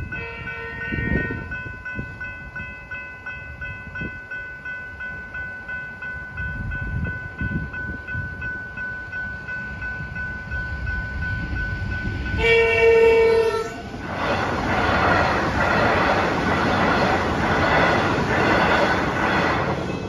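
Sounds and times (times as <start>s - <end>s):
train wheels clattering on rails: 6.6s - 20.0s
train horn blast: 12.3s - 13.8s.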